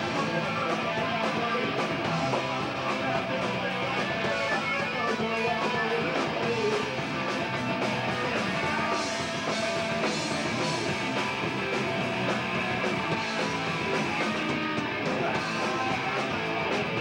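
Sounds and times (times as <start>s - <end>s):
punk rock band playing: 0.0s - 17.0s.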